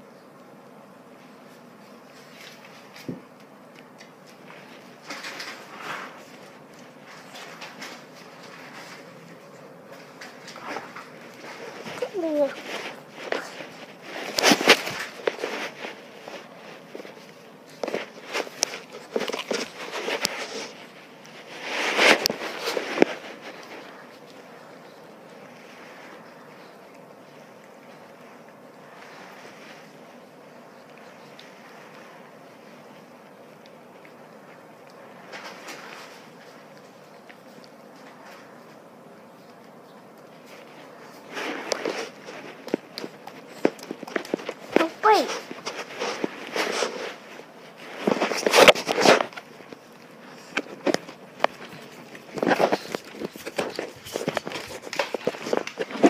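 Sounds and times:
dog scuffling on tile floor: 0:01.0 - 0:56.0.

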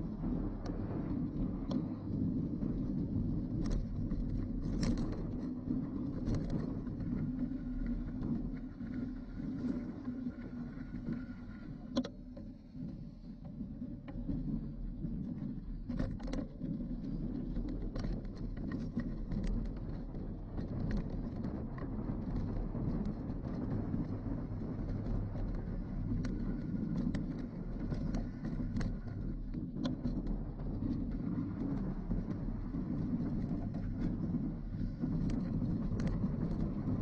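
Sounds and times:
bike tyres rumbling on gravel: 0:00.0 - 0:37.0
bike clicks and rattles: 0:01.4 - 0:08.6, 0:15.8 - 0:37.0.

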